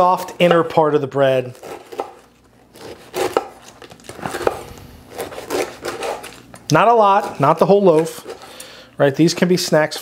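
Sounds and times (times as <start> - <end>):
knife cutting bread crust: 1.4 - 8.5.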